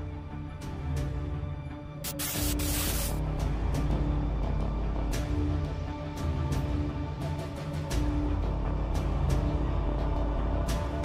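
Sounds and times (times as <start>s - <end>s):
harsh static hiss: 2.0s - 3.2s
dark horror music with drone: 3.2s - 11.0s.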